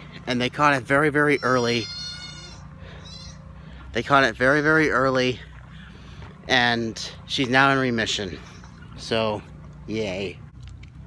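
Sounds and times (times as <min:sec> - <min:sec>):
high-pitched animal cry: 0:01.1 - 0:03.6.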